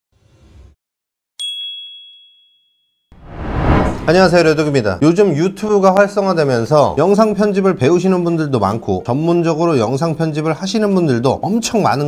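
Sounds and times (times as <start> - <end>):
bright ding: 1.4 - 2.9
whoosh: 3.1 - 4.5.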